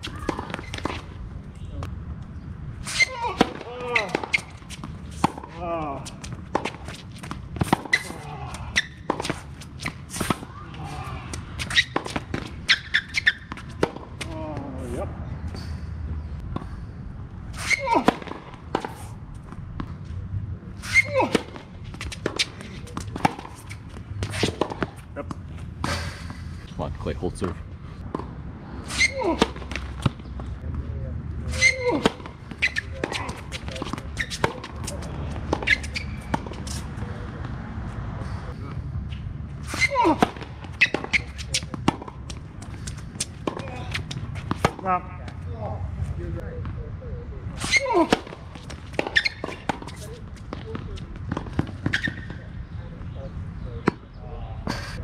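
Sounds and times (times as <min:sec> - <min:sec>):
racket hitting ball: 0:00.0 - 0:01.2, 0:03.0 - 0:14.4, 0:21.0 - 0:26.0, 0:31.6 - 0:37.6, 0:39.1 - 0:45.4, 0:47.6 - 0:52.4.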